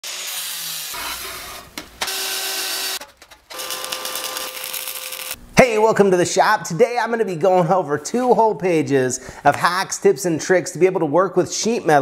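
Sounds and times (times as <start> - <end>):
angle grinder cutting steel: 0.0 - 5.4
man speaking: 5.6 - 12.0.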